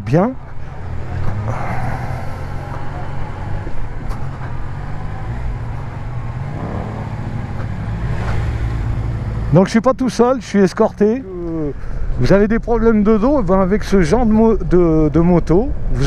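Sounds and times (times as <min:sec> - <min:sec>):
motorcycle engine running: 0:01.9 - 0:09.5.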